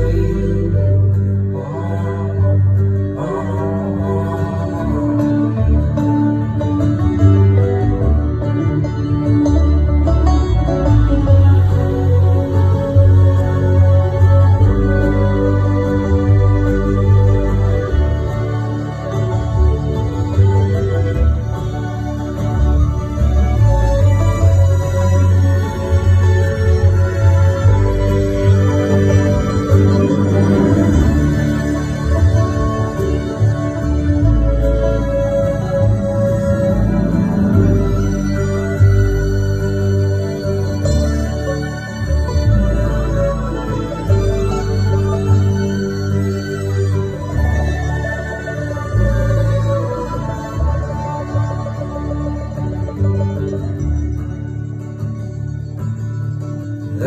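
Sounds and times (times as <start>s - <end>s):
strong low bass line: 0.0s - 41.5s
orchestra playing folk song: 0.0s - 57.0s.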